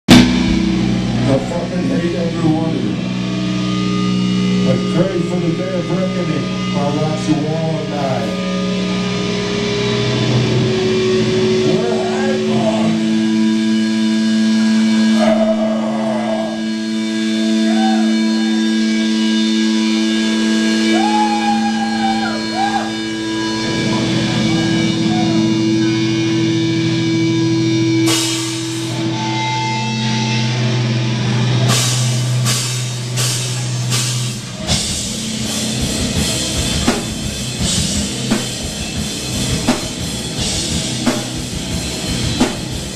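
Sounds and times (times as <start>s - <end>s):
held electric guitar notes: 0.1s - 42.9s
drum hits: 34.8s - 42.9s.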